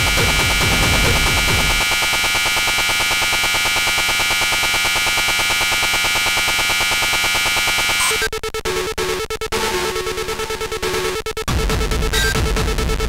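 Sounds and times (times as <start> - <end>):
techno beat: 0.0 - 1.9
harsh electronic buzzing drone: 0.0 - 8.9.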